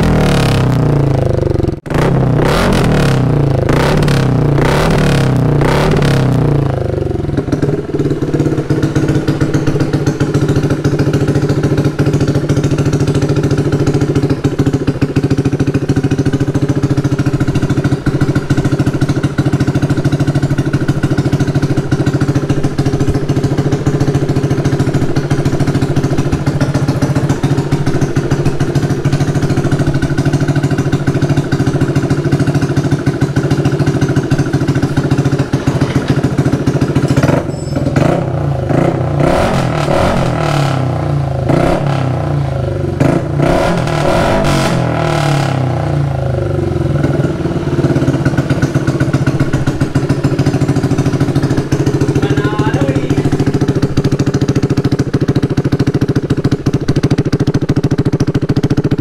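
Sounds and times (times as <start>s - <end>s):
scooter engine idling: 0.0s - 59.0s.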